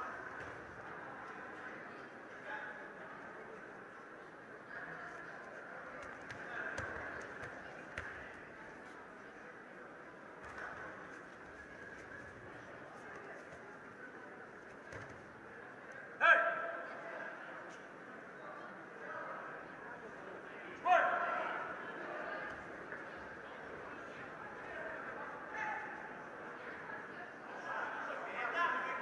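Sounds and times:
crowd murmur in a hall: 0.0 - 29.0.

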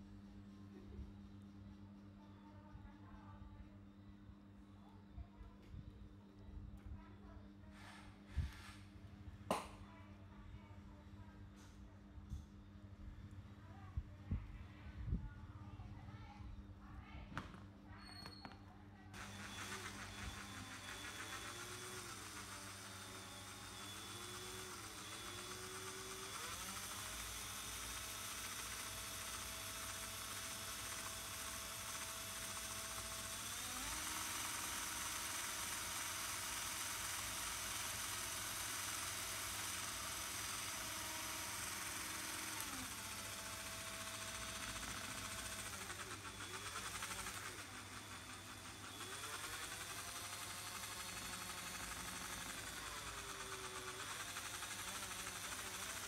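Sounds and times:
cordless drill gear whine: 7.8 - 8.9, 19.2 - 56.0.

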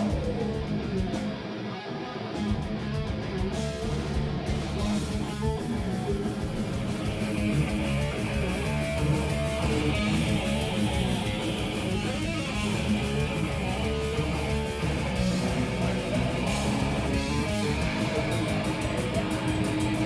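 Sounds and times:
bass guitar: 0.0 - 20.0
distorted electric guitar: 0.0 - 20.0
drums: 0.0 - 20.0.

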